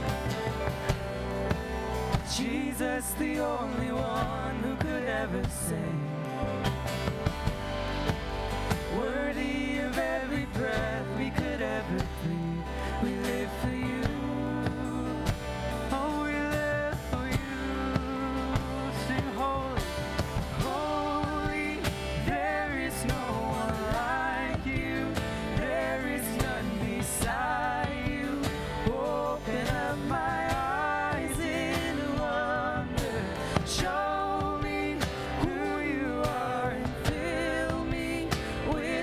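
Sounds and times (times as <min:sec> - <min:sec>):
acoustic guitar: 0:00.0 - 0:39.0
drums: 0:00.0 - 0:39.0
electric guitar: 0:00.0 - 0:39.0.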